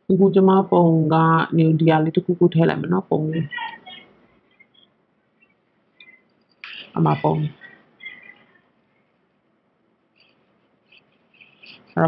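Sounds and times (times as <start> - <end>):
faint high chirps: 3.5 - 8.8.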